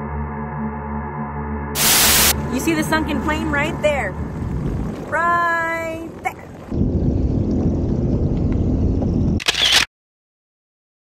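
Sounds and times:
loud rush of noise: 0:01.7 - 0:05.2
jet ski engine running: 0:01.8 - 0:06.8
water and wind noise: 0:02.3 - 0:09.4.

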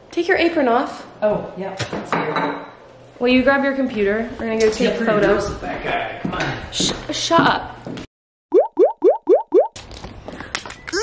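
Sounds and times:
cartoon rising bloops: 0:08.5 - 0:09.8.

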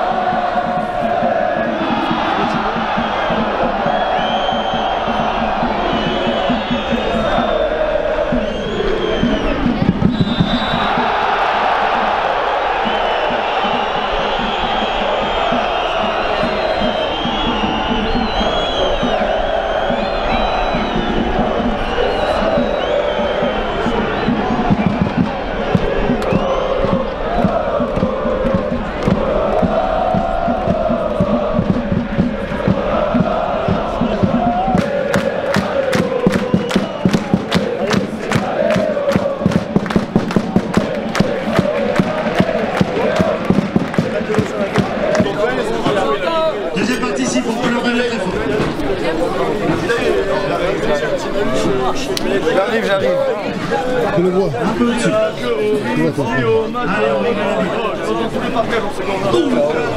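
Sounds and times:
steady drum beat: 0:00.0 - 0:55.2
football supporters chanting: 0:00.0 - 0:59.9
sharp rhythmic claps: 0:10.7 - 0:46.1.

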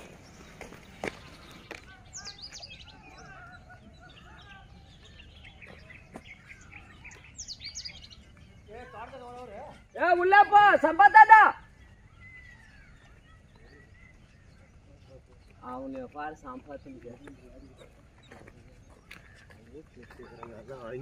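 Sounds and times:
birds chirping: 0:00.0 - 0:21.0
faint outdoor background noise: 0:00.0 - 0:21.0.

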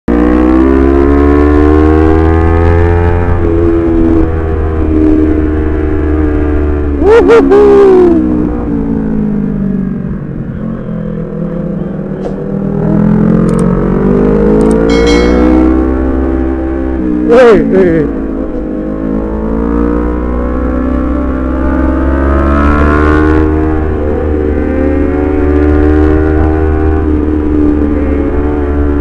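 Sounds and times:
motorcycle engine running: 0:14.7 - 0:16.2.

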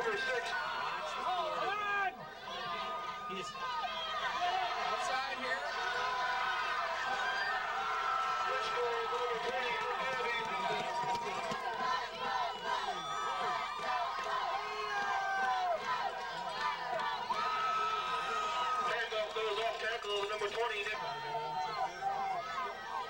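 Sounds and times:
crowd of spectators talking: 0:00.0 - 0:23.0.

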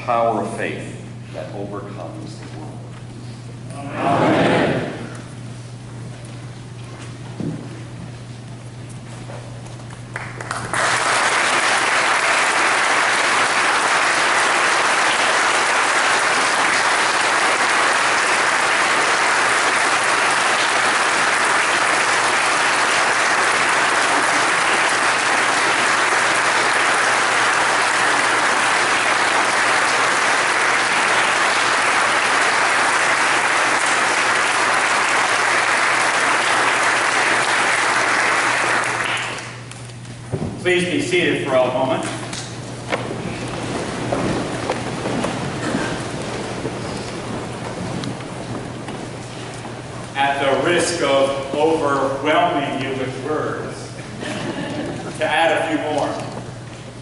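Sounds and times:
congregation applauding: 0:09.9 - 0:40.0, 0:40.7 - 0:51.6.

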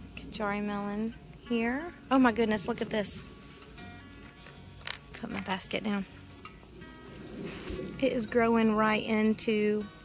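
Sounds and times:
faint background music: 0:00.0 - 0:10.0
leaves and vines rustling: 0:02.6 - 0:08.3.

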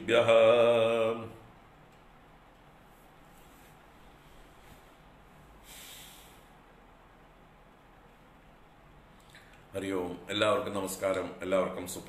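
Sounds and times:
low room hiss: 0:00.0 - 0:12.0
breath through the nose: 0:05.6 - 0:06.6.

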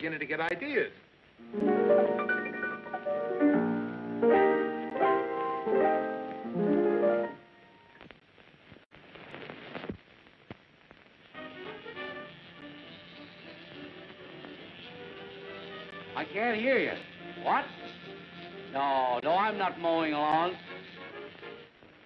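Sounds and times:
faint music: 0:00.0 - 0:08.5, 0:11.0 - 0:22.0
piano chords: 0:01.4 - 0:07.8.

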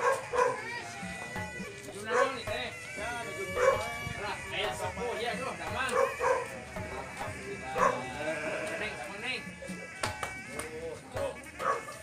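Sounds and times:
background music: 0:00.0 - 0:12.0
sheep bleating: 0:00.0 - 0:12.0
voices: 0:00.0 - 0:12.0.

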